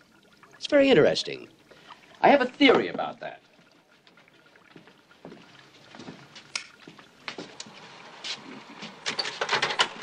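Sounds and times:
faint footsteps: 3.5 - 9.0.

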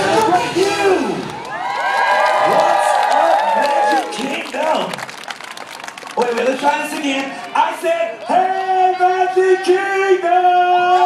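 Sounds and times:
crowd cheering and shouting: 0.0 - 5.0, 6.1 - 11.0.

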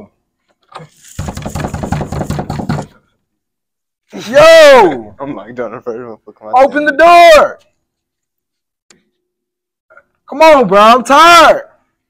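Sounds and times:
fist pounding on wooden door: 1.2 - 3.0.

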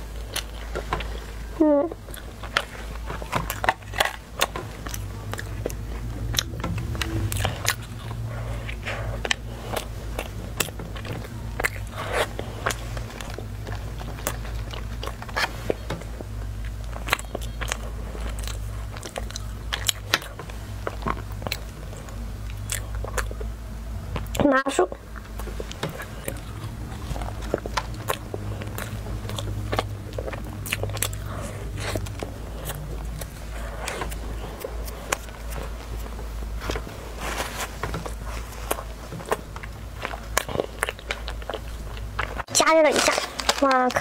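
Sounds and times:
chewing crisp pastry: 0.0 - 44.0
low hum: 0.0 - 44.0.

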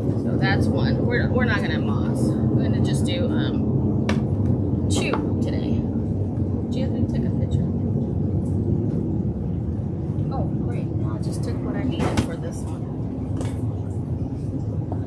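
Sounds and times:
ventilation rumble: 0.0 - 15.0.

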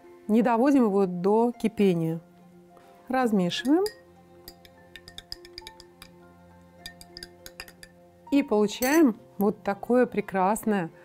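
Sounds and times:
quiet background music: 0.0 - 11.0
teaspoon clinking against glass: 3.6 - 6.2, 6.8 - 8.0, 8.8 - 9.1.

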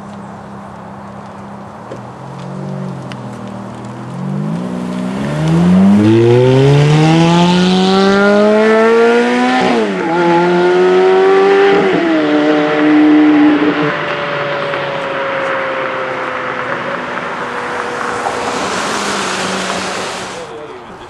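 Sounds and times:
sports car engine revving: 2.0 - 20.5.

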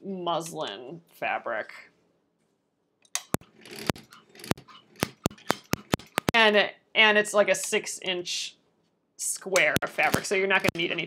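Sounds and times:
sewing machine motor stitching: 3.2 - 6.3.

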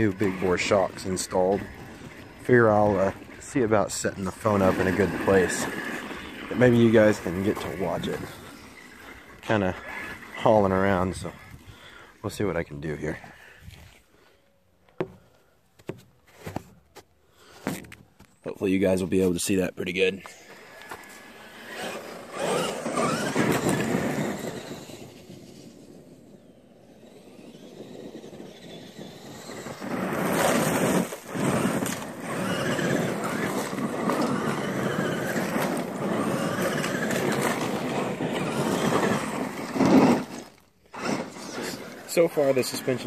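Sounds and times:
toy truck motor whine: 0.0 - 11.6, 20.4 - 43.0
tyres on dirt and gravel: 0.0 - 43.0.

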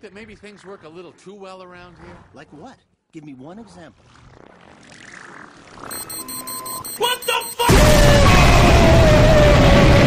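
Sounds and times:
high-pitched electronic pulsing: 5.8 - 7.6
steady electronic tone: 5.9 - 7.7.

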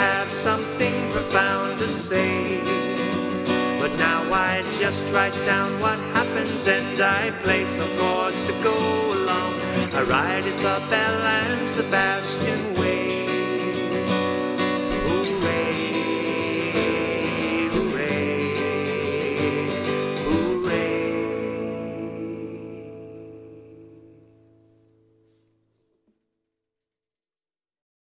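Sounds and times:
acoustic guitar strumming: 0.0 - 25.4.

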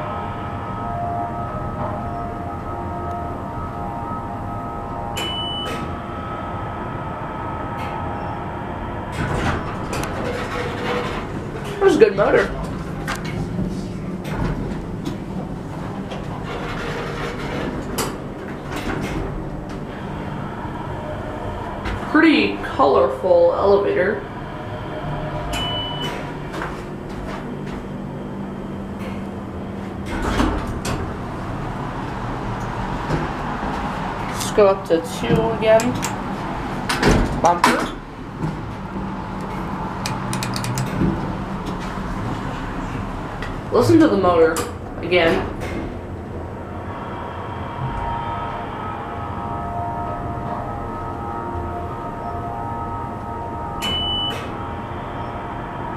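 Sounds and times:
elevator pump motor humming: 0.0 - 55.9
sharp clicks: 40.0 - 40.9.

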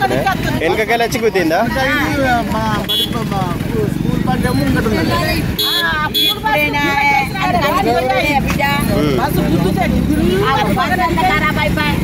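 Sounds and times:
crowd chatter: 0.0 - 12.0
street traffic: 0.0 - 12.0
woman talking agitatedly: 5.1 - 12.0.

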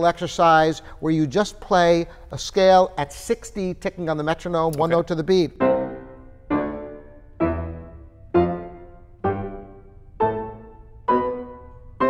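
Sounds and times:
grand piano playing slow scale: 5.4 - 12.0.

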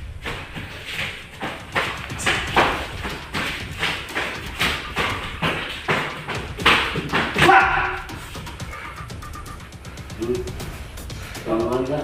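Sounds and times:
kicks landing thuds: 0.1 - 8.4
bare feet striking concrete: 0.2 - 8.9.

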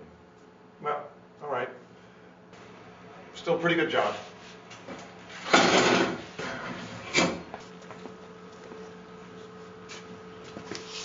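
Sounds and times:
faint steady hum: 0.0 - 5.3
chair scraping: 5.3 - 7.4.

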